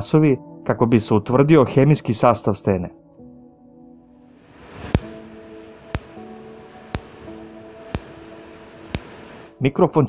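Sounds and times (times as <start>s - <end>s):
laser pulses snapping: 4.8s - 9.4s.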